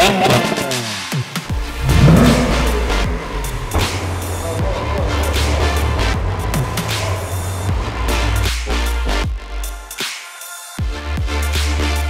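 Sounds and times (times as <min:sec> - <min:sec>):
music with heavy bass line: 0:01.4 - 0:10.0, 0:10.8 - 0:12.0.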